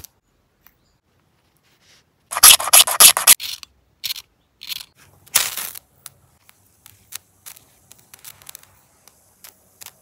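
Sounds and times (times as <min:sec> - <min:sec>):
metal piece scraping: 0:02.3 - 0:03.6.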